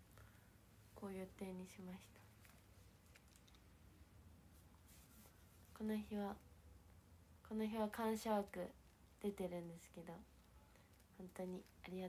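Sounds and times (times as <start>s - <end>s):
woman speaking: 1.0s - 2.3s, 5.7s - 6.4s, 7.5s - 10.3s, 11.1s - 12.0s
sketchbook paper rustling: 4.5s - 5.7s.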